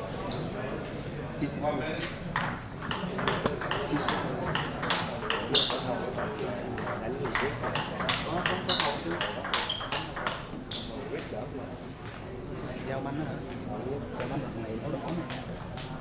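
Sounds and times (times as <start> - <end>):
table tennis ball clicking: 2.3 - 10.5, 15.3 - 16.0.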